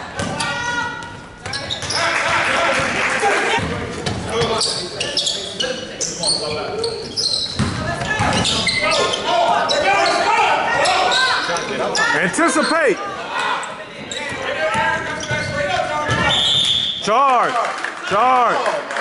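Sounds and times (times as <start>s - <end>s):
sneakers squeaking: 0.0s - 2.4s, 3.6s - 17.1s
referee's whistle: 16.2s - 17.1s.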